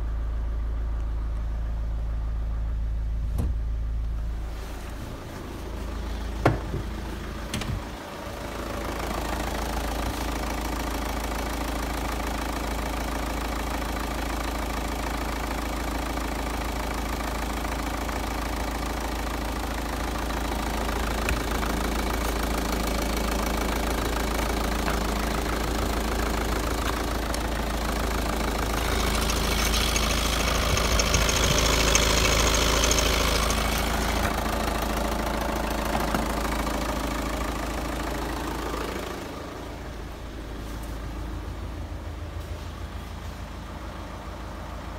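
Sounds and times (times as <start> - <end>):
diesel engine idling: 0.0 - 44.9.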